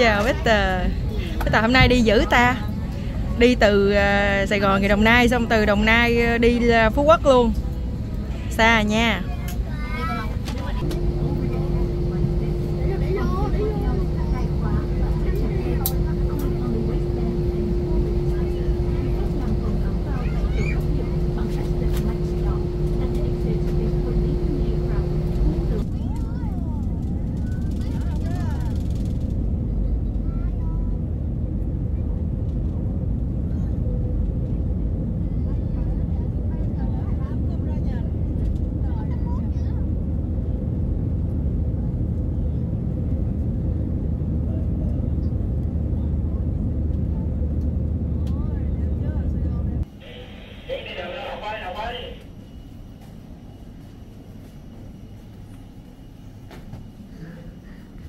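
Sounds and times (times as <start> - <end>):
airliner engine rumble: 0.0 - 58.0
constant hum tone: 0.0 - 58.0.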